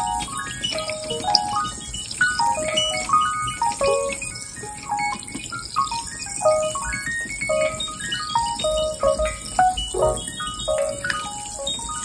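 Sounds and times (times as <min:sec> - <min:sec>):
fast chaotic piano: 0:02.5 - 0:12.0.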